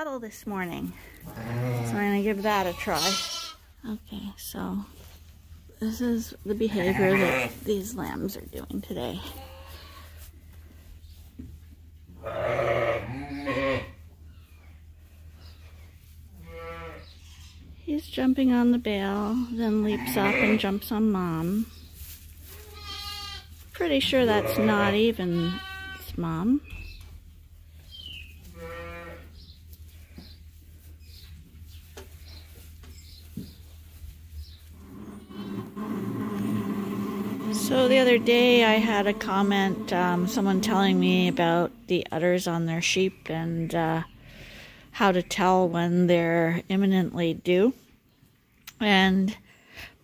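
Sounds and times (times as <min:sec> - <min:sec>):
sheep bleating: 0:01.3 - 0:02.0, 0:02.6 - 0:03.6, 0:06.7 - 0:07.6, 0:12.2 - 0:14.0, 0:16.4 - 0:17.5, 0:19.8 - 0:20.6, 0:22.6 - 0:23.5, 0:24.2 - 0:26.0, 0:28.6 - 0:29.2
small birds chirping: 0:13.1 - 0:23.5, 0:25.0 - 0:36.4.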